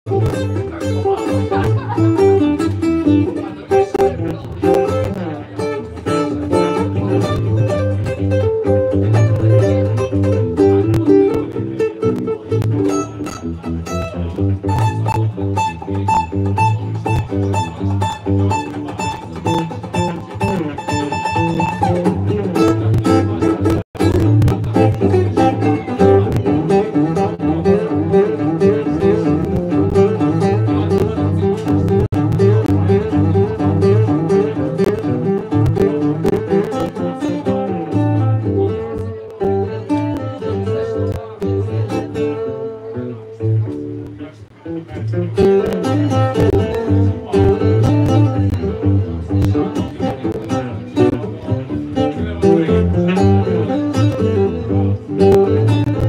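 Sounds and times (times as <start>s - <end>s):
acoustic guitar: 0.1s - 56.0s.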